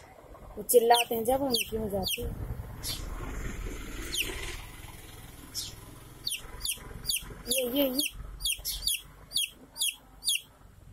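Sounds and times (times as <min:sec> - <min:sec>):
chick peeping: 0:00.8 - 0:03.0, 0:05.6 - 0:10.5.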